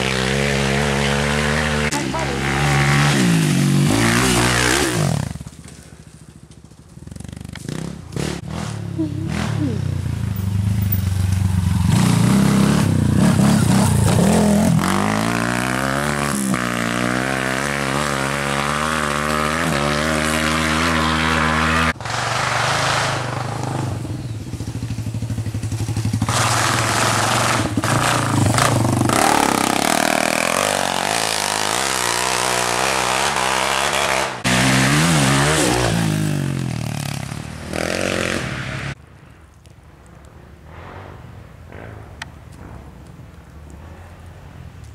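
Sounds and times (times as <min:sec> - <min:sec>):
dirt bike engines revving: 0:00.0 - 0:39.0.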